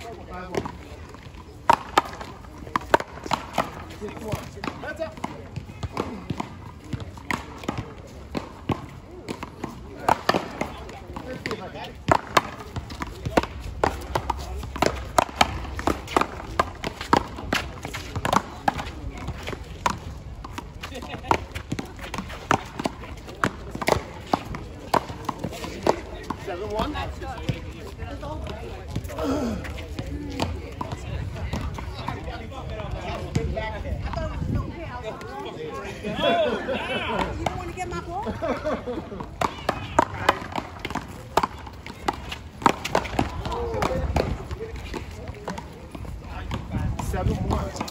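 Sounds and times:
voices: 0:00.0 - 0:47.9
shoes scuffing on court: 0:02.6 - 0:31.9.

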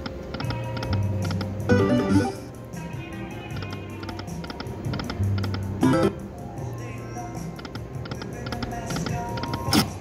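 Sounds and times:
electronic slot machine tones: 0:00.3 - 0:02.5, 0:05.2 - 0:06.2.

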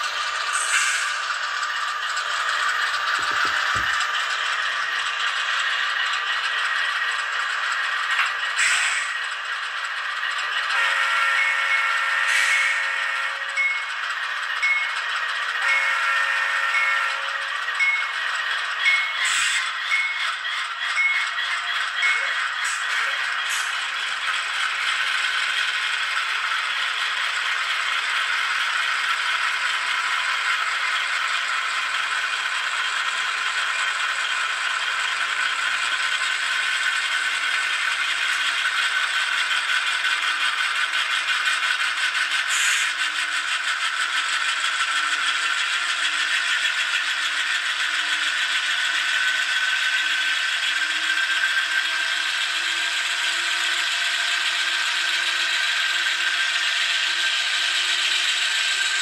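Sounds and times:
model train diesel engine sound: 0:00.0 - 0:59.0.

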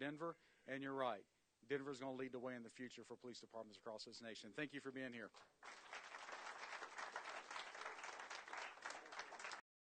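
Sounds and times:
applause: 0:05.6 - 0:09.7.

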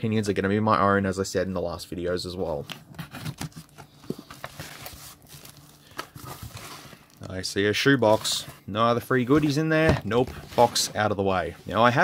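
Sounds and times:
cardboard scraping: 0:06.2 - 0:07.2, 0:08.0 - 0:08.7, 0:09.3 - 0:12.0.

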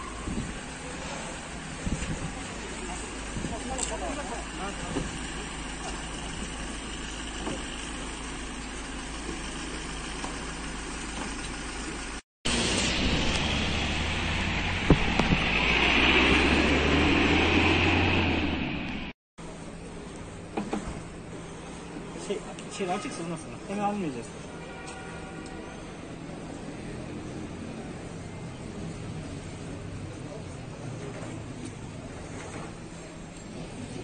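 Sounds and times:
street noise: 0:00.0 - 0:34.0
van engine pulling away: 0:00.2 - 0:19.1.

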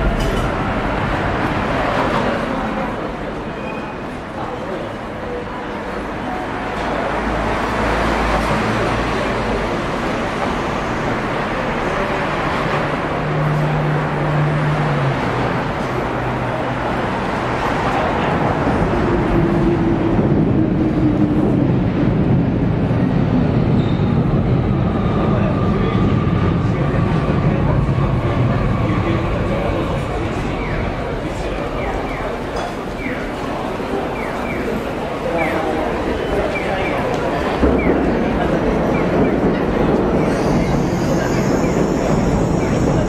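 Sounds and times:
people's voices: 0:00.0 - 0:43.0
road traffic: 0:00.0 - 0:43.0.

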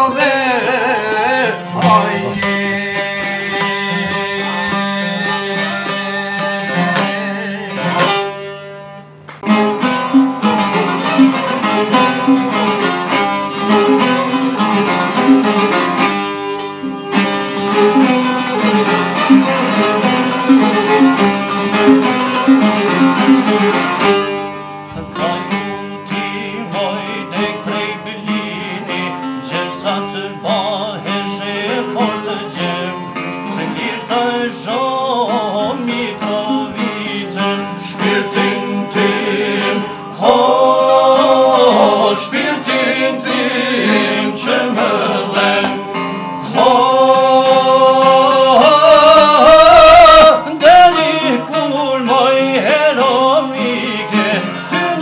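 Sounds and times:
men singing: 0:00.0 - 0:08.2, 0:10.4 - 0:15.9, 0:17.7 - 0:23.4, 0:24.9 - 0:55.0
plucked lutes playing melody: 0:00.0 - 0:55.0.

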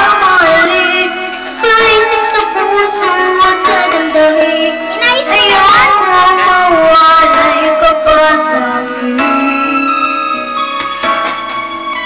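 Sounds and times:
high voice singing: 0:00.0 - 0:10.0
instrumental backing music: 0:00.0 - 0:12.0.

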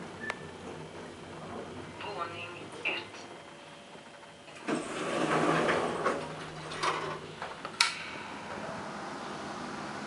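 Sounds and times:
door motor hum: 0:03.3 - 0:10.0
elevator doors sliding open: 0:04.0 - 0:10.0
sharp click: 0:07.8 - 0:08.1.

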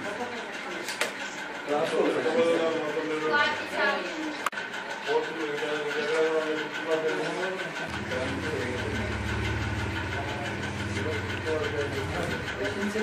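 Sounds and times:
murmuring voices: 0:00.0 - 0:13.0.

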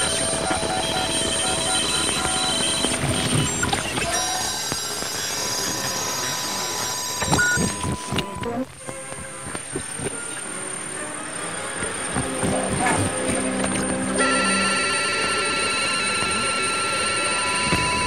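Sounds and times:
whistling radio tones: 0:00.0 - 0:08.8, 0:09.4 - 0:18.0
radio static hiss: 0:00.0 - 0:18.0.

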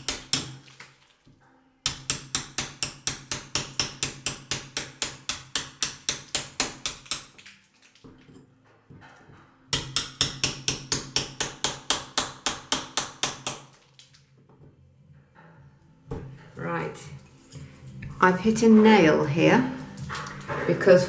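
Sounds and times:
hammer tapping a knife: 0:09.7 - 0:13.6.

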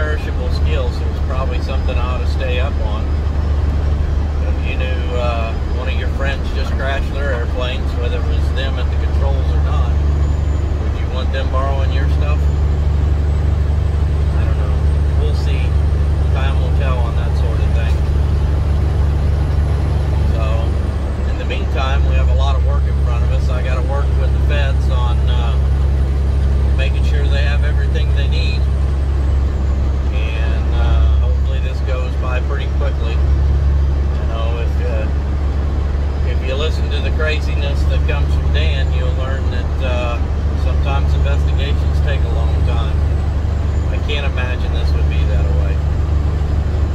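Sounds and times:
man talking: 0:00.0 - 0:03.2, 0:04.4 - 0:10.2, 0:10.8 - 0:12.6, 0:14.3 - 0:18.2, 0:20.2 - 0:25.8, 0:26.8 - 0:28.7, 0:30.0 - 0:33.3, 0:34.1 - 0:35.2, 0:36.2 - 0:43.1, 0:43.9 - 0:45.8
truck diesel engine droning: 0:00.0 - 0:46.9.

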